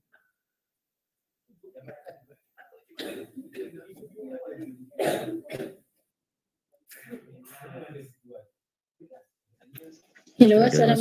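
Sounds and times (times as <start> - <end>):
low indistinct voice: 1.6 - 5.8, 6.9 - 8.4, 9.0 - 11.0
throat-clearing cough: 3.0 - 3.8, 5.0 - 5.8.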